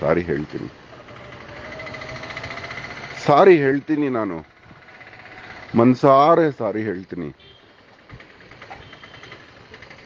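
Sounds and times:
engine running: 0.0s - 10.0s.

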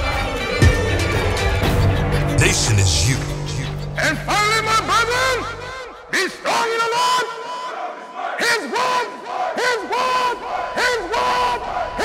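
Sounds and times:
group shouting a chant: 6.2s - 12.0s.

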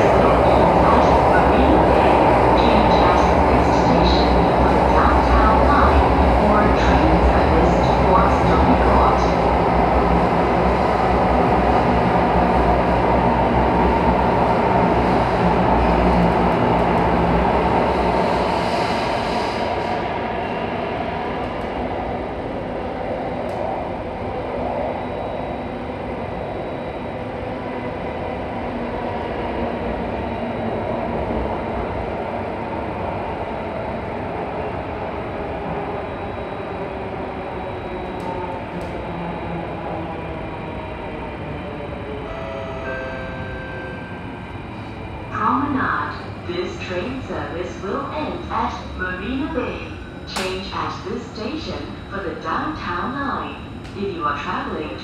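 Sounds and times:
train rumble and wheel noise: 0.0s - 55.0s.

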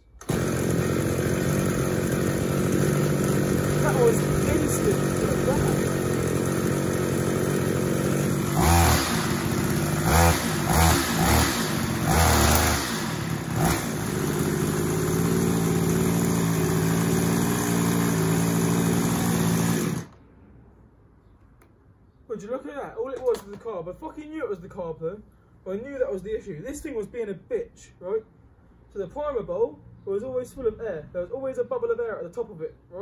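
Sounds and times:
strimmer engine revving: 0.0s - 20.2s.

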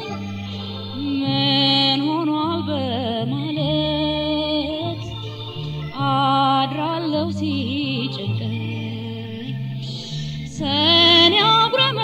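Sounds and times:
bass line: 0.0s - 12.0s
woman singing ornamented melody: 0.0s - 12.0s.

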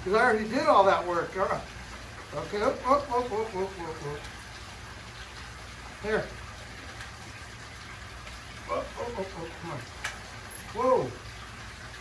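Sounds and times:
man saying oh: 10.7s - 11.2s.

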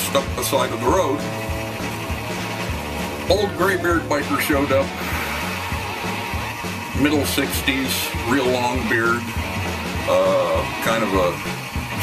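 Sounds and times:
music with short low bass notes: 0.0s - 12.0s.

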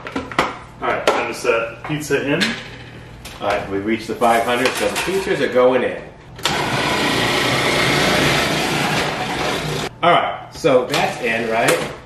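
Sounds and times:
food processor motor shredding: 6.4s - 9.9s.

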